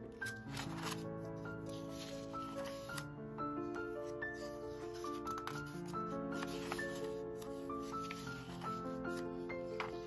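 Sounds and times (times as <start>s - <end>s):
melodic background music: 0.0s - 10.0s
paper pages turning: 0.1s - 10.0s.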